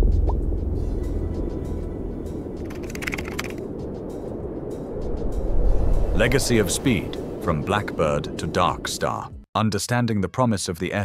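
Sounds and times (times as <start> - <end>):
background music: 0.0 - 10.3
deep boom and low rumble: 3.7 - 9.4.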